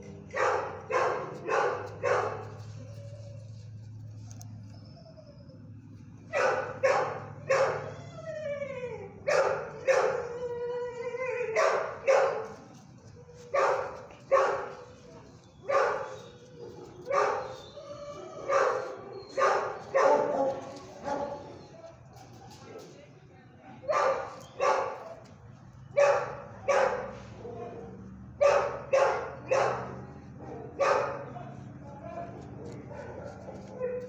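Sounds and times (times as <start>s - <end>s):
dog barking: 0.3s - 2.7s, 6.3s - 7.9s, 9.3s - 10.2s, 11.6s - 12.6s, 13.5s - 14.9s, 15.6s - 17.6s, 18.5s - 21.6s, 23.8s - 25.2s, 26.0s - 31.3s, 32.6s - 34.0s
dog whining: 1.0s - 22.0s.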